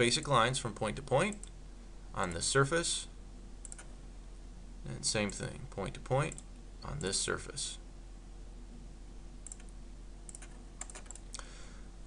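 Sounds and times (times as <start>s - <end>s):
low electrical hum: 0.0s - 12.0s
computer mouse and key clicks: 3.6s - 3.9s, 9.4s - 11.4s.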